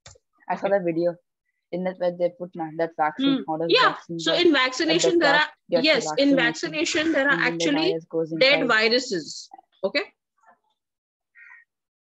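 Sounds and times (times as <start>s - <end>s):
person speaking: 0.4s - 9.9s.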